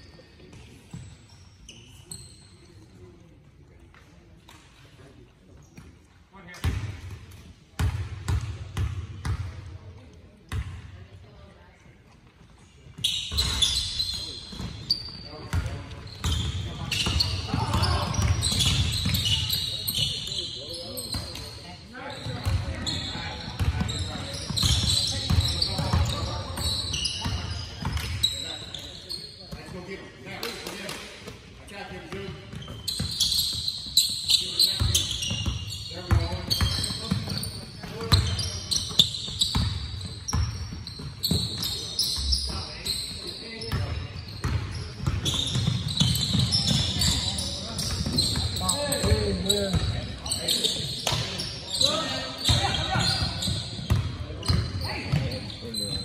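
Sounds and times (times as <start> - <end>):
sneakers squeaking on court: 0.0 - 3.1, 5.5 - 9.7, 10.4 - 10.9, 12.3 - 56.0.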